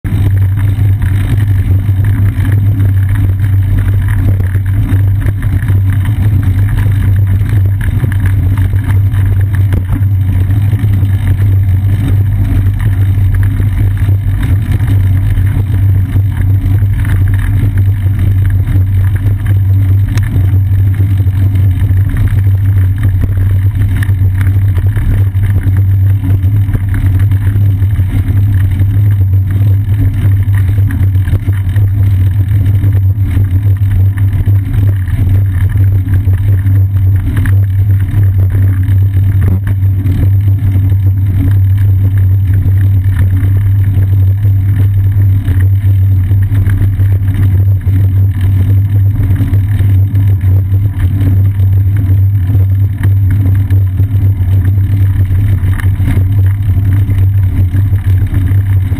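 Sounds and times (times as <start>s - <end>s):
bicycle riding vibration: 0.0s - 58.9s
wind rumble: 0.0s - 58.9s.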